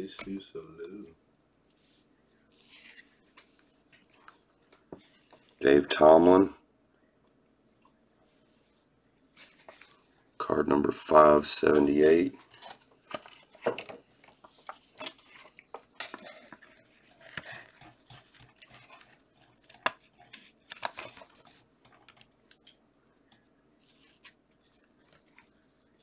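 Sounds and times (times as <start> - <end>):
cards and plastic sleeves handled: 2.4 - 5.6, 9.3 - 10.1, 11.8 - 25.6.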